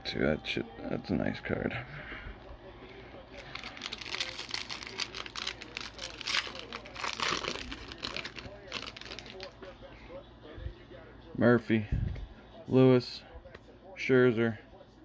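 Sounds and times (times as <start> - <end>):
foil wrapper tearing and crinkling: 3.4 - 9.6.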